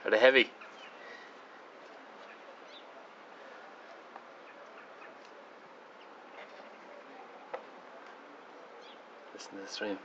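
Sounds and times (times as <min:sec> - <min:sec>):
bird chirps: 0:00.5 - 0:01.4, 0:02.2 - 0:03.1, 0:08.6 - 0:09.1.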